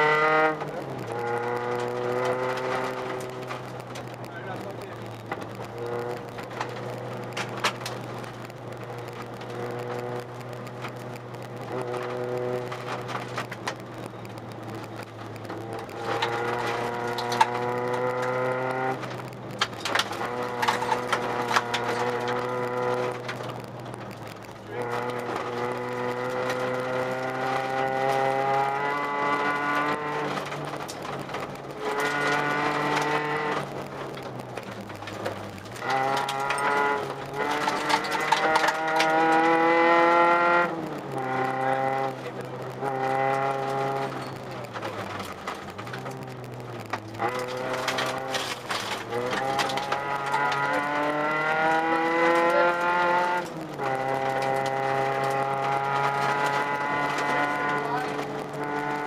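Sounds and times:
rally car engine revving: 0.0 - 59.0
sharp clicks: 0.6 - 59.0.

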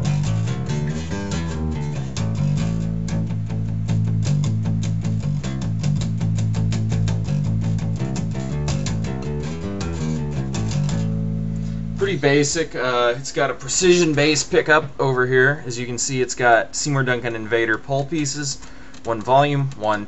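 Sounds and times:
electric bass plucked notes: 0.0 - 13.1.

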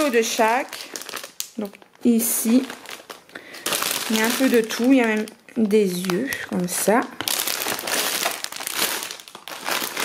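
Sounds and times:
plastic bags crinkling: 0.0 - 10.0.

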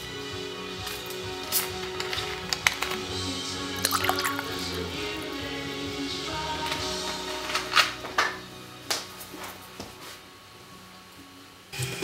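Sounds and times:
music playing: 0.0 - 12.0
ice clinking in a glass: 3.8 - 4.5.

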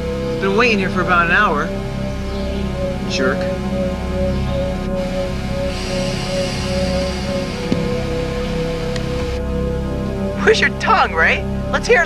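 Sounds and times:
low drone: 0.0 - 11.8
held pulsing tone: 3.9 - 10.4
hiss: 5.7 - 9.4.

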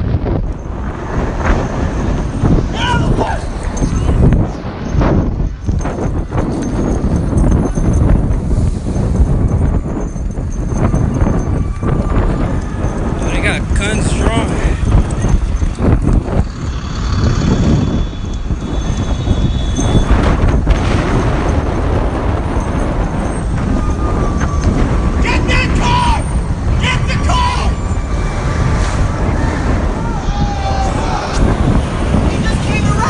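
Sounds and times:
wind rumble on microphone: 0.0 - 33.0
running footsteps on street: 3.6 - 25.2.

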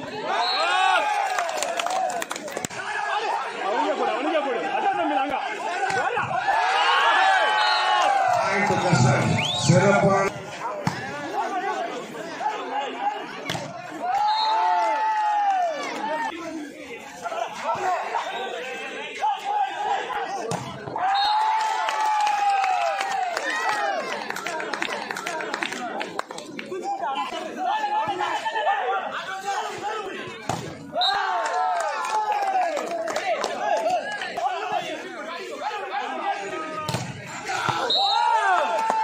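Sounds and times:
chatter of overlapping voices: 0.0 - 21.0, 23.0 - 39.0.

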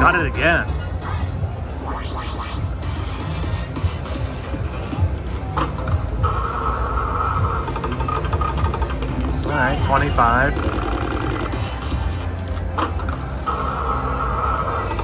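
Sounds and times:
slot machine electronic music: 0.0 - 15.0.

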